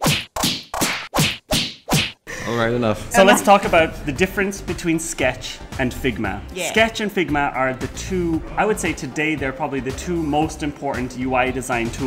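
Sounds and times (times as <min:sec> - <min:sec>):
whip cracks: 0:00.0 - 0:02.2.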